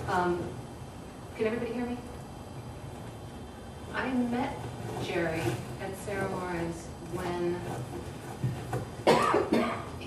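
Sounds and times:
person coughing: 9.0s - 10.0s.

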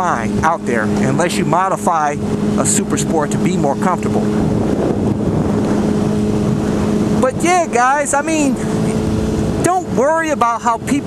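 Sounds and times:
motorcycle engine cruising: 0.0s - 11.0s
wind on microphone: 0.0s - 11.0s.

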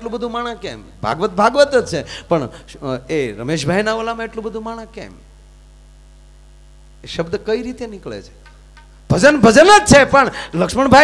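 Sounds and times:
man speaking: 0.0s - 5.2s, 7.0s - 8.4s, 9.1s - 11.0s
electrical mains hum: 0.0s - 11.0s.

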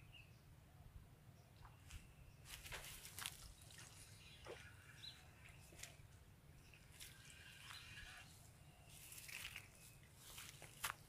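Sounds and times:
small water splashes and drips: 3.0s - 10.9s.

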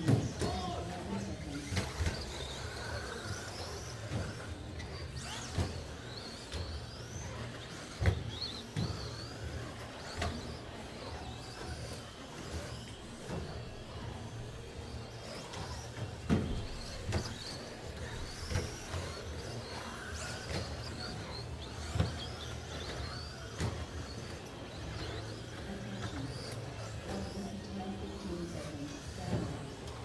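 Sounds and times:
rc truck motors whining: 0.0s - 30.0s.

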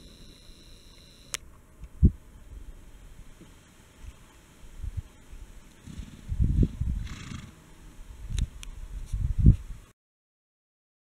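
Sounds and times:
horse blowing through nostrils: 5.8s - 7.6s
horse rumbling: 5.8s - 7.6s.

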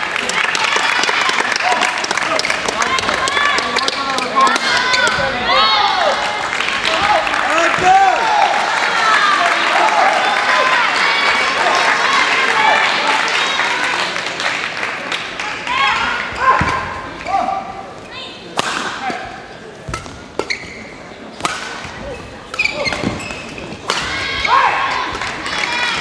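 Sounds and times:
racket striking shuttlecock: 18.6s - 19.2s, 21.4s - 24.1s
sneakers squeaking on court: 19.6s - 21.2s, 21.8s - 23.9s.

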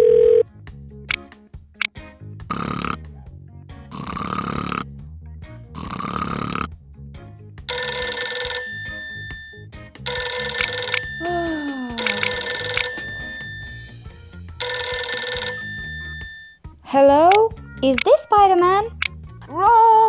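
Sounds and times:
telephone ringing: 0.0s - 0.4s, 7.7s - 16.6s
soft background music: 0.0s - 1.9s, 3.7s - 20.0s
cartoon character snoring: 2.5s - 3.1s, 3.9s - 5.0s, 5.7s - 6.8s.

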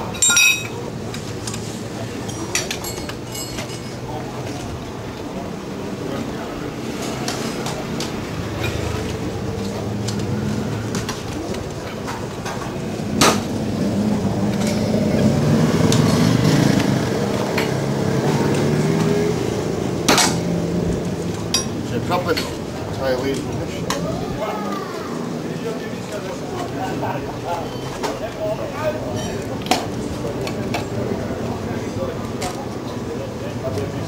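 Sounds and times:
sharp metallic clanks: 0.0s - 0.8s, 2.3s - 4.0s, 21.5s - 22.6s
tyre levers clanking on metal rim: 0.1s - 0.8s, 2.3s - 4.0s, 21.4s - 22.6s.

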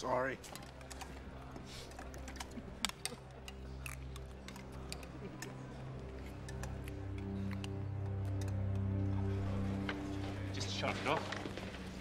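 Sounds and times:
low steady drone: 2.0s - 10.6s.

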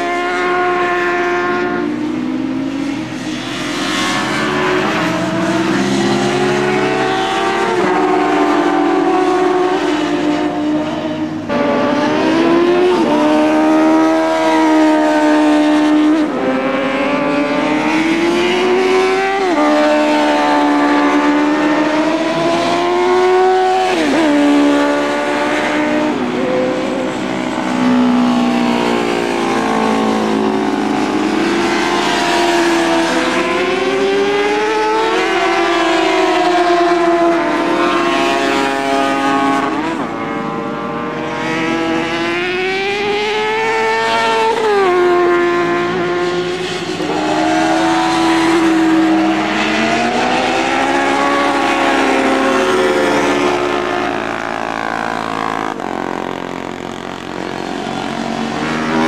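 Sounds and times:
sportbike engines revving: 0.0s - 59.0s.

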